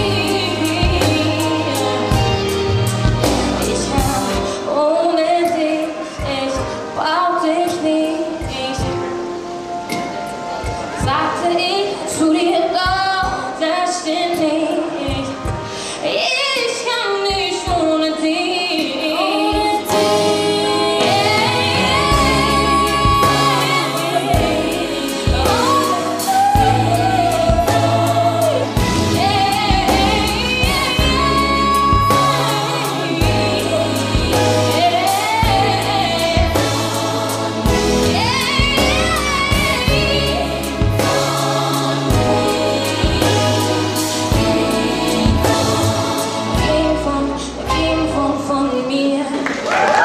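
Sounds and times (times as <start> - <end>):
backing track with bass and beat: 0.0 - 4.5, 21.1 - 47.0
woman singing pop song: 0.0 - 9.2, 11.0 - 49.6.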